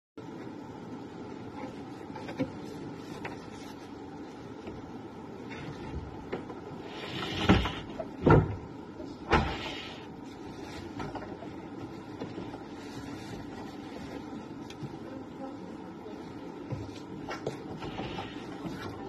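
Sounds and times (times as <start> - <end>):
steady low hum: 0.2 - 19.0.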